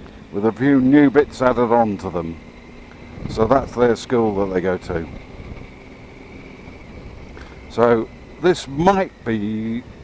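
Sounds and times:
motorcycle engine rumbling: 0:00.0 - 0:10.0
wind noise on microphone: 0:02.7 - 0:07.8.

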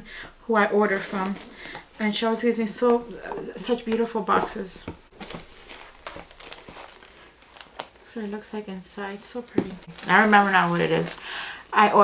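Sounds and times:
paper and cardboard rustling: 0:00.8 - 0:02.1, 0:02.9 - 0:08.0, 0:09.4 - 0:11.2.

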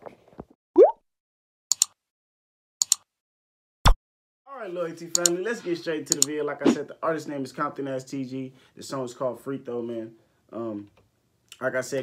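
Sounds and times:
mouse clicks: 0:05.2 - 0:05.4, 0:06.1 - 0:06.3.

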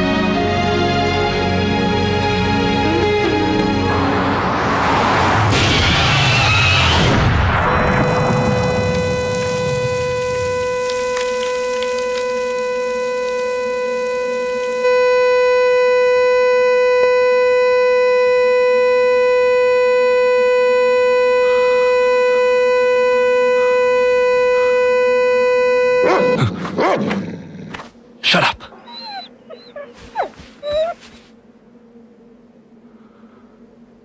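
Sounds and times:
car horn steady tone: 0:07.9 - 0:26.5
dog crying: 0:28.7 - 0:31.2.

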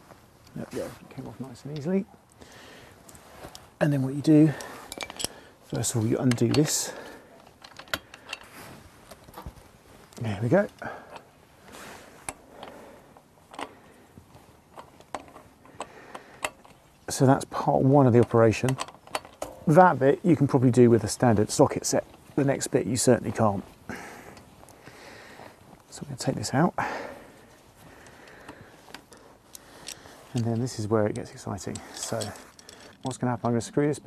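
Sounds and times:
low background hiss: 0:00.0 - 0:34.0
small metal parts clicking: 0:04.5 - 0:08.5, 0:13.5 - 0:13.8, 0:14.7 - 0:16.9, 0:18.2 - 0:19.7, 0:28.0 - 0:33.6.

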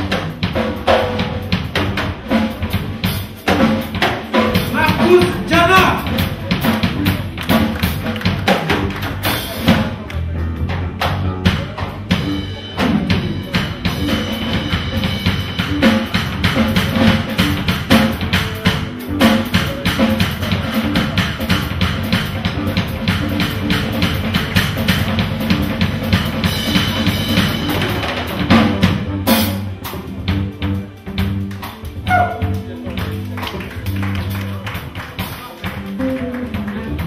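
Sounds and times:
jazz drum kit playing: 0:00.0 - 0:37.0.

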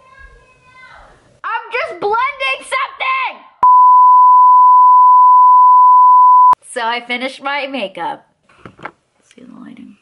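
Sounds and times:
censor bleep tone: 0:03.6 - 0:06.6.

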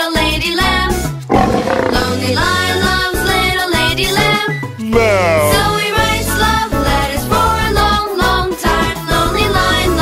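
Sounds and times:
children's song with backing track: 0:00.0 - 0:10.0
cartoon lion roar: 0:01.3 - 0:02.3, 0:04.9 - 0:05.9.

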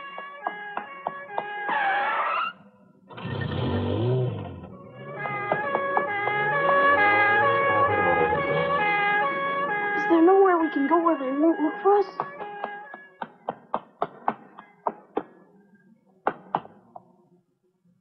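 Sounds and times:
police siren wailing: 0:00.0 - 0:02.6, 0:04.5 - 0:13.2
car rushing past: 0:03.1 - 0:10.0.

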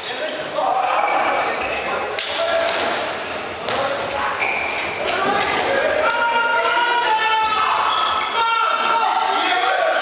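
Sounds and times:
shoes squeaking on hall floor: 0:00.0 - 0:09.9
players calling out: 0:00.1 - 0:10.0.

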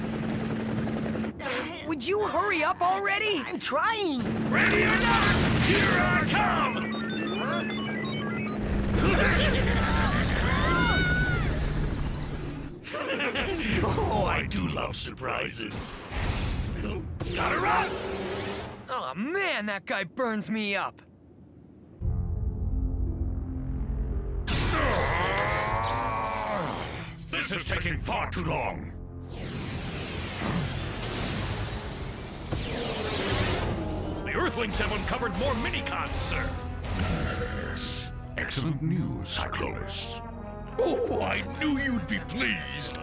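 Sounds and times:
electronic robot beeps: 0:05.8 - 0:12.8
electronic chirp: 0:06.0 - 0:09.0.

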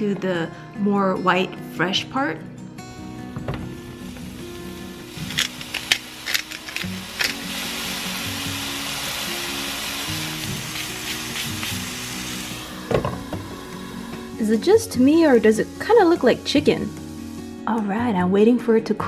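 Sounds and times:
background music: 0:00.0 - 0:19.0
food sizzling in a pan: 0:03.7 - 0:17.7.

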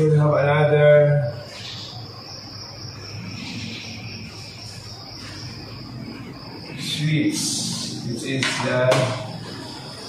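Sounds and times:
insect trilling: 0:00.0 - 0:10.0
low background hum: 0:00.0 - 0:10.0.

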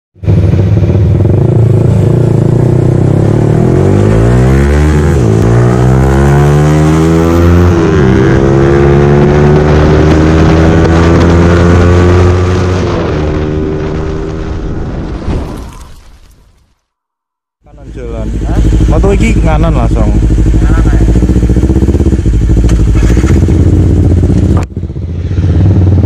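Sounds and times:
motorcycle engine accelerating: 0:00.2 - 0:15.2, 0:17.7 - 0:26.0.

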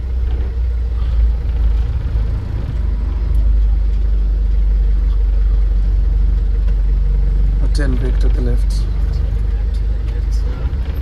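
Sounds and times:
truck engine low rumble: 0:00.0 - 0:11.0.

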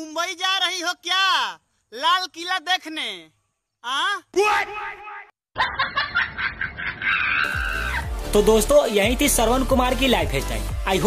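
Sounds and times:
person snickering laugh: 0:05.6 - 0:08.1.

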